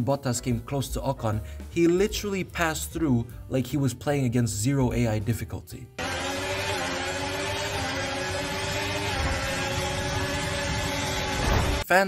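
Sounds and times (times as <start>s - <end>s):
racing car engines whining: 6.0s - 11.8s.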